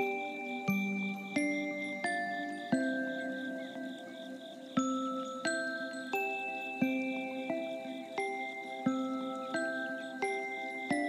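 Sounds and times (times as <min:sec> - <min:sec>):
bell-like lullaby melody: 0:00.0 - 0:11.0.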